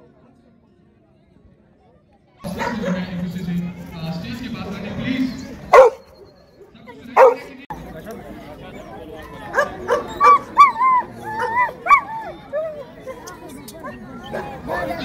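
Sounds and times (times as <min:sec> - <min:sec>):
dog barking: 0:02.5 - 0:03.0, 0:05.7 - 0:06.1, 0:07.2 - 0:07.5, 0:09.5 - 0:10.7
dog yipping and whining: 0:09.6 - 0:12.8.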